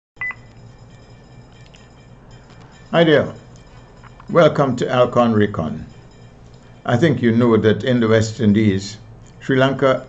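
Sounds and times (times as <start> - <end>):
high electronic beep: 0.2 - 2.7.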